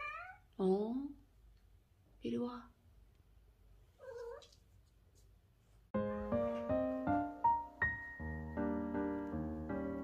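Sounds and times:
cat meowing: 0:00.0 - 0:00.5, 0:04.0 - 0:04.6
piano music: 0:05.9 - 0:10.0.

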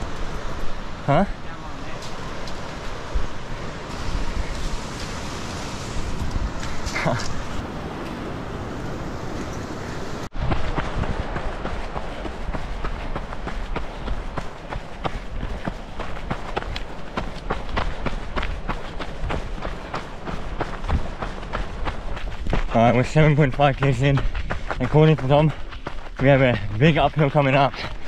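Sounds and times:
running footsteps on dirt trail: 0:00.0 - 0:05.2, 0:09.3 - 0:28.0
steady rushing noise: 0:00.0 - 0:28.0.

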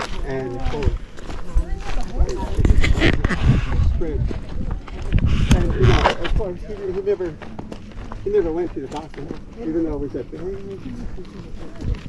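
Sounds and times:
people talking: 0:00.0 - 0:07.4, 0:08.3 - 0:12.0
hand rubbing on microphone: 0:02.2 - 0:06.4.

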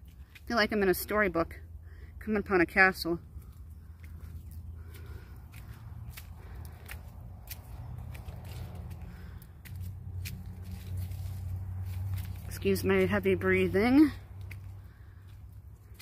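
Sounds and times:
steady low rumble: 0:01.5 - 0:16.0
heavy breathing: 0:03.3 - 0:10.1, 0:14.5 - 0:16.0.

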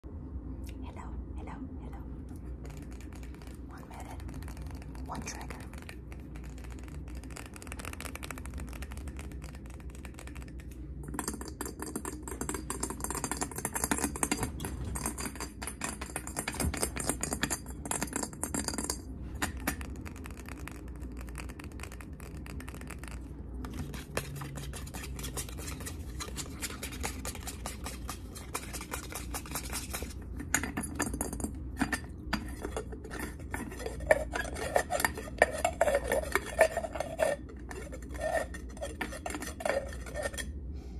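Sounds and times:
fingernail tapping on glass jar: 0:02.7 - 0:23.0.

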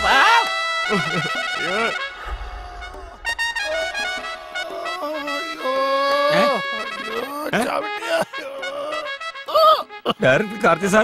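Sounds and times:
film music with ringing trill: 0:00.0 - 0:11.0
man groaning: 0:02.2 - 0:09.9.

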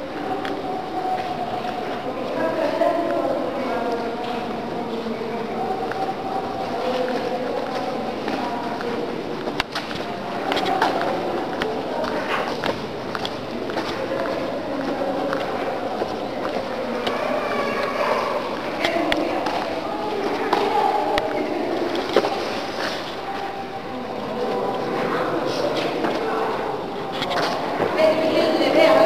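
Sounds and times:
indistinct voices talking: 0:00.0 - 0:29.0.

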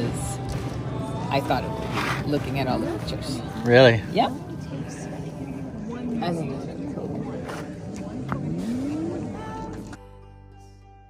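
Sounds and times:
people talking indistinctly: 0:00.0 - 0:09.9
background noise: 0:00.0 - 0:11.0.

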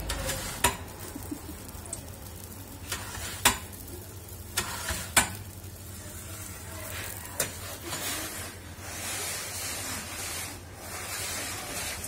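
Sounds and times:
wood fire crackling: 0:00.0 - 0:12.0.

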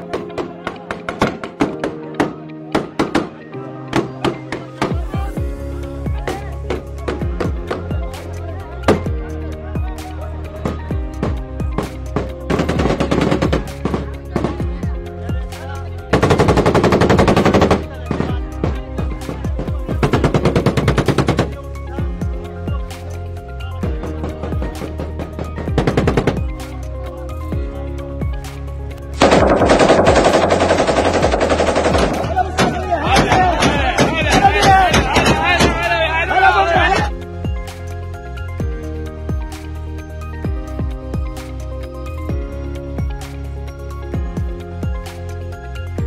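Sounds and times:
background music with a beat: 0:00.0 - 0:46.0
automatic gunfire: 0:16.3 - 0:17.8, 0:29.2 - 0:32.4.

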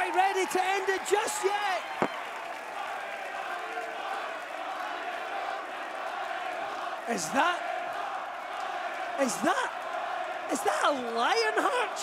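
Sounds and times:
crowd cheering and clapping: 0:00.0 - 0:12.0.

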